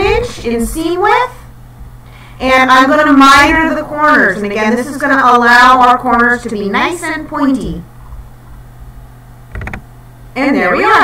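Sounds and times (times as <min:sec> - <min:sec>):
low electrical hum: 0:00.0 - 0:11.0
sharp ticks: 0:09.5 - 0:09.8.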